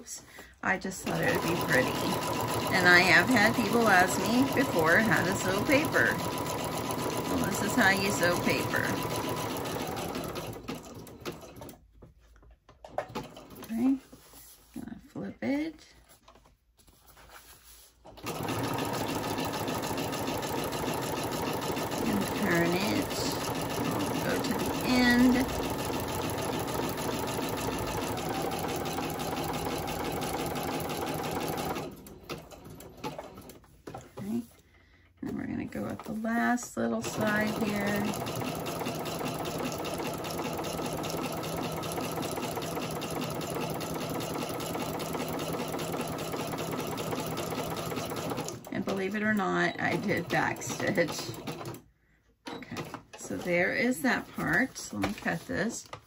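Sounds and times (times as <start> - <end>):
electric sewing machine stitching: 1.0 - 11.8, 18.2 - 33.6, 36.8 - 51.8.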